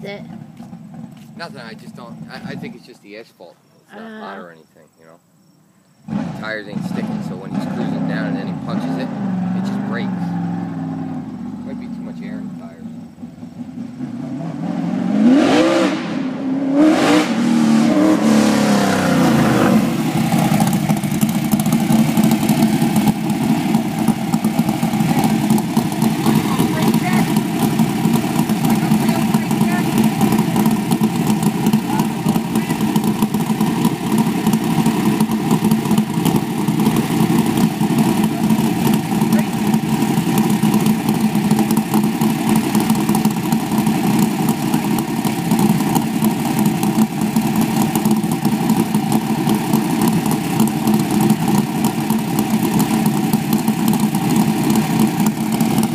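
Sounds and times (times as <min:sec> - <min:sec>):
race car engine idling: 0:00.0 - 0:03.2, 0:06.0 - 0:14.3, 0:17.3 - 0:55.9.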